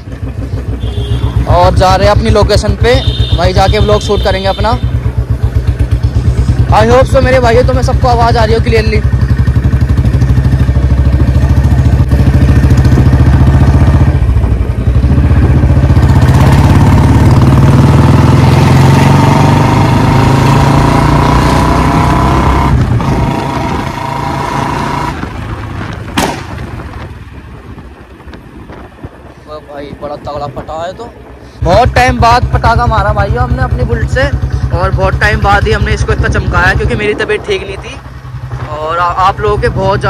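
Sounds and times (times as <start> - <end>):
motorcycle engine running: 0.0 - 40.0
exhaust backfire pop: 25.1 - 27.1.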